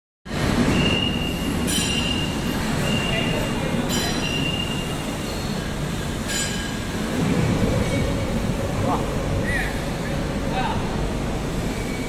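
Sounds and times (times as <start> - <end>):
roll forming machine rumbling: 0.3 - 12.0
high machine squealing: 0.6 - 6.8.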